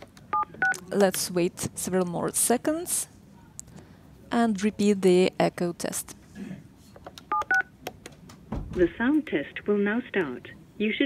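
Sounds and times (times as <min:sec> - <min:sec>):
phone keypad beeps: 0:07.3 - 0:07.7.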